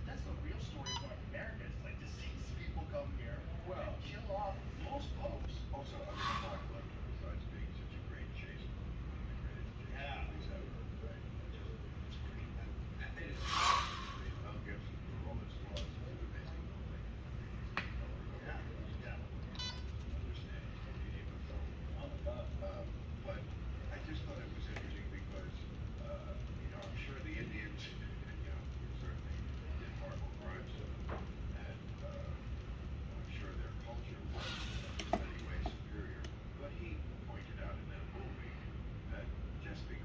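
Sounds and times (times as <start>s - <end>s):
steady low hum: 0.0s - 40.0s
steady low rumble: 1.2s - 40.0s
brief hiss: 13.4s - 14.3s.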